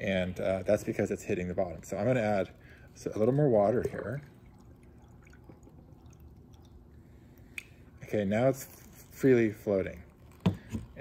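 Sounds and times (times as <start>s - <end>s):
water pouring into plastic container: 0.4s - 11.0s.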